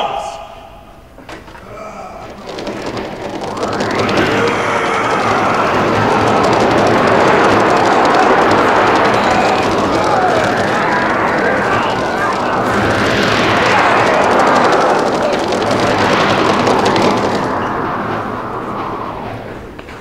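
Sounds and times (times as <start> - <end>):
crowd shouting battle charge: 3.8 - 17.3.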